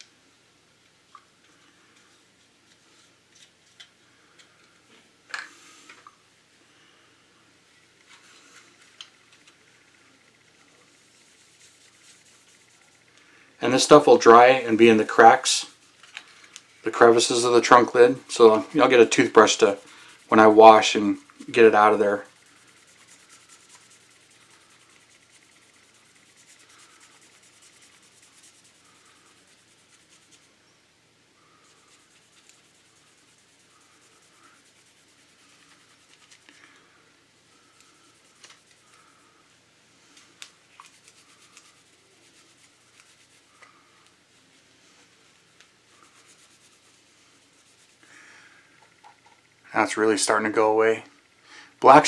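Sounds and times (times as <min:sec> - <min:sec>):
cloth rubbing on plastic: 0:10.4 - 0:13.1, 0:13.7 - 0:16.1, 0:16.7 - 0:30.6, 0:31.4 - 0:36.8, 0:40.6 - 0:48.1.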